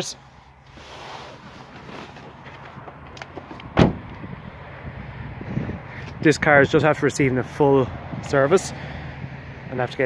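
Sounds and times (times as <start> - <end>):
car door slamming: 3.3 - 4.2.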